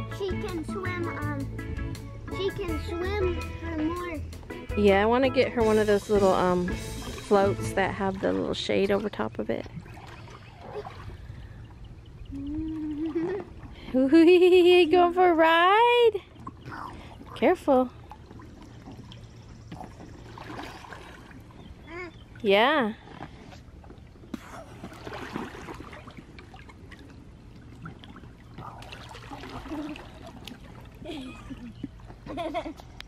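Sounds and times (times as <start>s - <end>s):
low steady rumble: 0.0s - 33.0s
water lapping and trickling: 0.0s - 33.0s
small splashes and drips: 6.8s - 11.7s, 16.2s - 33.0s.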